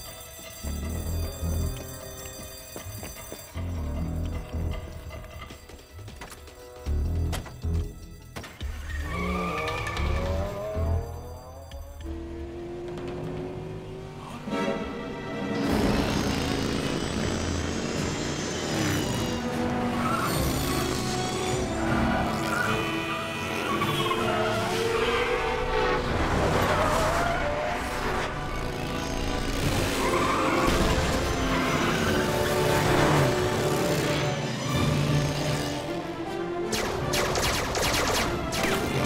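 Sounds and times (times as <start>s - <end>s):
tyre squeals: 8.7s - 10.8s
cars speeding: 9.0s - 35.9s
action music: 27.8s - 39.0s.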